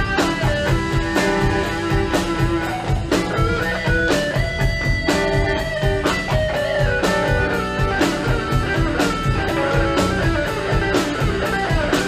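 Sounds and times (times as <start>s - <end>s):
electric guitar bending notes: 0.0s - 12.0s
live rock band playing: 0.0s - 12.0s.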